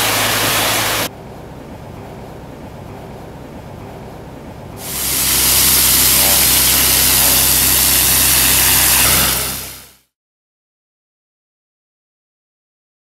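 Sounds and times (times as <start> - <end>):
water jet spray hissing: 0.0 - 1.1, 4.8 - 10.0
pump engine drone: 0.0 - 10.1.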